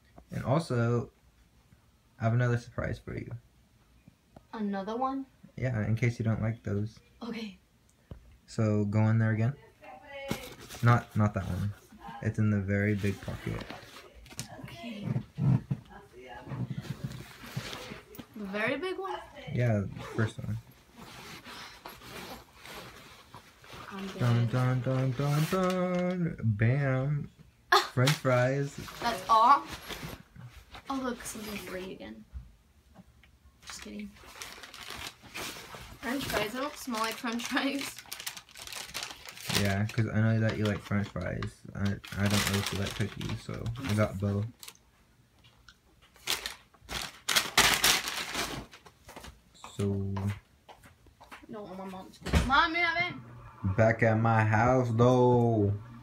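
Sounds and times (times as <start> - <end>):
paper bag rustling: 10.3 - 11.7, 12.9 - 15.7, 20.9 - 26.2, 33.7 - 41.0, 41.9 - 44.7, 46.1 - 49.4
soft knocks and scrapes: 14.9 - 18.3.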